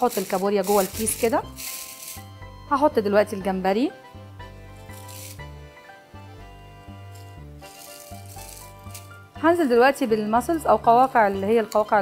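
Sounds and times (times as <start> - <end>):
background music with bass line: 0.6 - 12.0.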